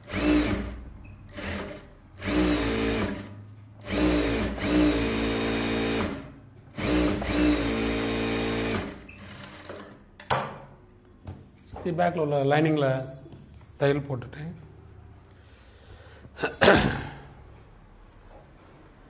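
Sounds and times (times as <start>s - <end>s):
industrial sewing machine stitching: 0.0s - 10.0s.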